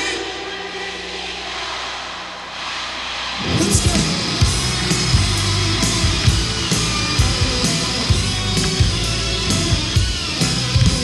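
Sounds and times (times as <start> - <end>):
arena crowd noise: 0.0 - 11.0
held rock chord: 3.4 - 11.0.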